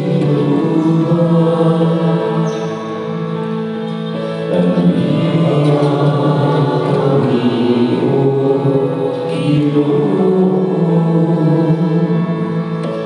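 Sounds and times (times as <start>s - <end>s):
instrumental accompaniment: 0.0s - 13.0s
slow hymn singing: 0.0s - 13.0s.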